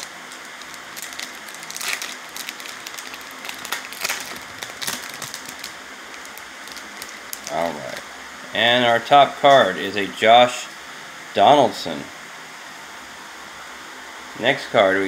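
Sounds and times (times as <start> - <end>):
plastic foil wrapper crinkling: 0.0 - 8.0.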